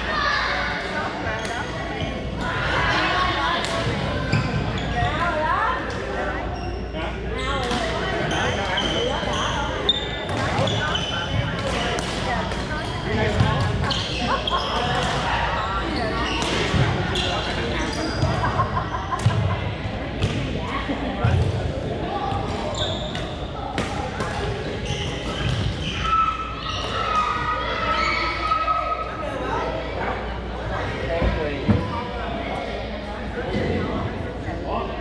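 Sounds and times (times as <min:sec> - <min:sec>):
players' voices: 0:00.0 - 0:35.0
sneakers squeaking on floor: 0:04.2 - 0:05.3, 0:06.5 - 0:12.0, 0:13.3 - 0:18.6, 0:22.3 - 0:23.6, 0:24.2 - 0:28.4.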